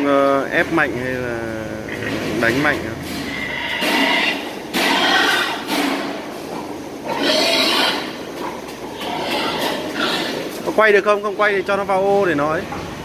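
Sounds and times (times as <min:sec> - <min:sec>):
pigs squealing: 0:01.7 - 0:11.7.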